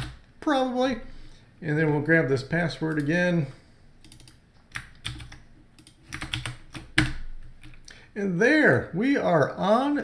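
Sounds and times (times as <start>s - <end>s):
keyboard keys clicking: 4.0s - 7.8s.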